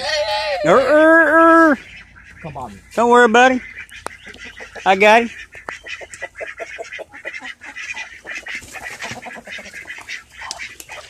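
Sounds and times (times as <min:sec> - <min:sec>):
poultry calling: 0:00.0 - 0:11.0.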